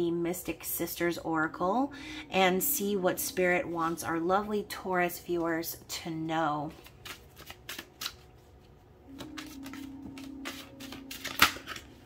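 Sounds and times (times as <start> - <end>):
steady low hum: 0.1 - 6.6, 8.4 - 12.0
cards being shuffled: 6.7 - 12.0.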